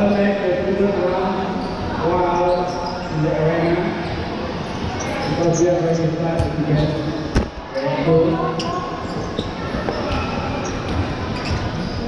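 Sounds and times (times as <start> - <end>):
balls bouncing on court floor: 6.3 - 7.6.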